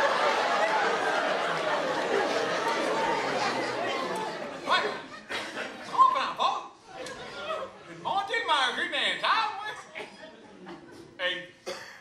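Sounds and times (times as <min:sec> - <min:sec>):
crowd hubbub: 0:00.0 - 0:06.0.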